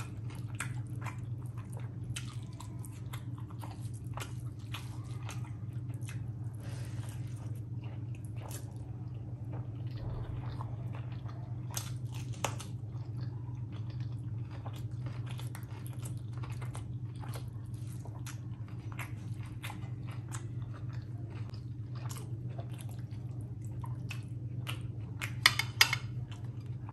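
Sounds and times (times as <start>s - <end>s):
chewing with wet mouth clicks: 0.0s - 6.4s, 7.0s - 26.9s
low hum: 0.0s - 26.9s
fingers mixing food on plate: 25.3s - 26.2s.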